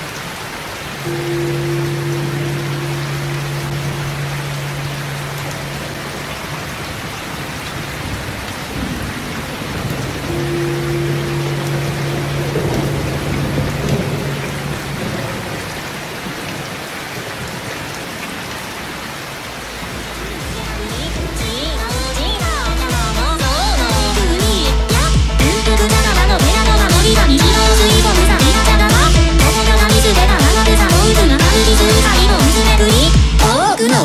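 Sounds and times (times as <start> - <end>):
steady rain: 0.0 - 34.0
low held tones: 1.0 - 7.1, 10.3 - 15.4.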